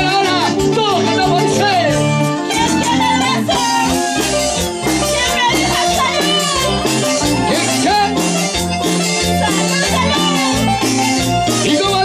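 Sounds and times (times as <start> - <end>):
bass line: 0.0 - 12.0
stringed instruments: 0.0 - 12.0
woman singing into microphone: 2.5 - 6.8.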